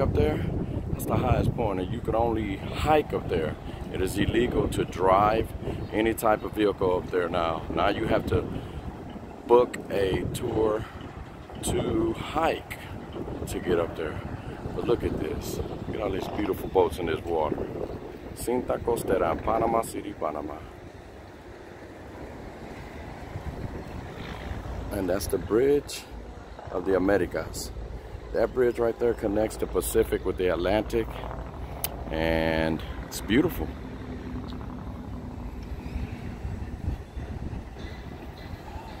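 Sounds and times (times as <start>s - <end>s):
outdoor noise by water: 0.0s - 15.0s, 17.4s - 39.0s
distant engines: 0.0s - 39.0s
faint steady engine hum: 0.0s - 39.0s
wind buffeting microphone: 0.0s - 39.0s.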